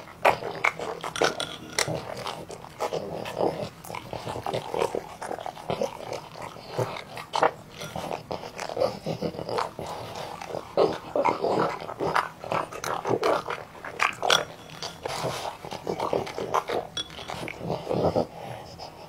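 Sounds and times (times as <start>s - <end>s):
dog slurping and chewing: 0.0s - 19.0s.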